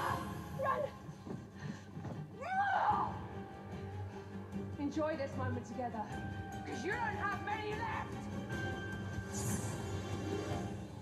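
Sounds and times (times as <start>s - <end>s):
woman yelling: 2.4s - 3.2s.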